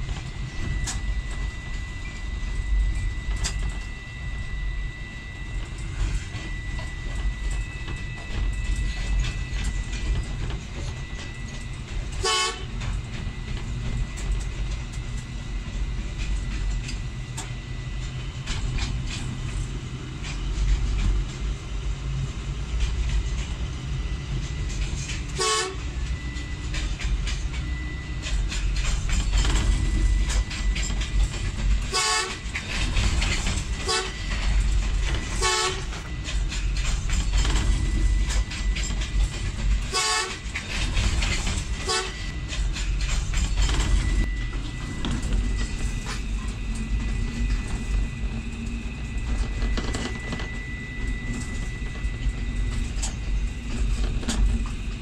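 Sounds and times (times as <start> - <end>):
locomotive engine rumble: 0.0 - 55.0
locomotive horn toots: 12.2 - 12.9, 25.3 - 26.0, 31.8 - 32.5, 33.8 - 34.4, 35.2 - 36.0, 39.8 - 40.5, 41.8 - 42.3.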